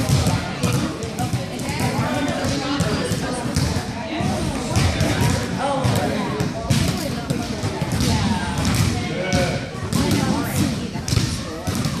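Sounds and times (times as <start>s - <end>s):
basketballs bouncing on gym floor: 0.0s - 12.0s
children chattering: 0.0s - 12.0s.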